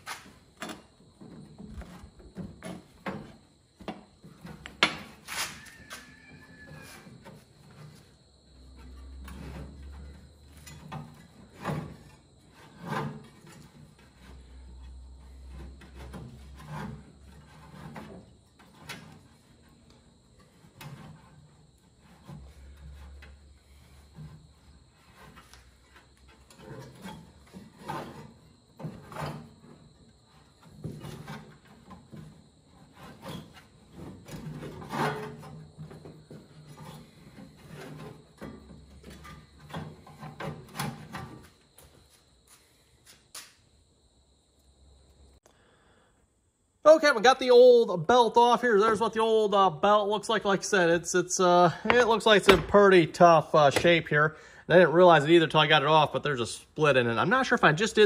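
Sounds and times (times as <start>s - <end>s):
rubber belt rubbing and scraping: 0.0s - 0.6s, 4.4s - 42.6s
knocks against metal: 52.5s - 52.7s.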